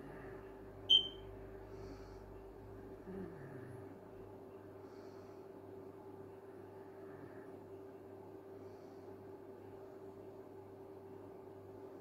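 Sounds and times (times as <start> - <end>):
faint steady hum: 0.0 - 12.0
short high-pitched beep: 0.9 - 1.2.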